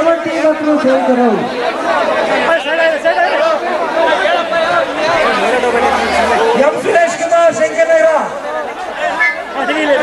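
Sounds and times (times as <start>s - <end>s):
man talking: 0.0s - 1.6s, 2.4s - 8.4s
crowd chatter: 0.0s - 10.0s.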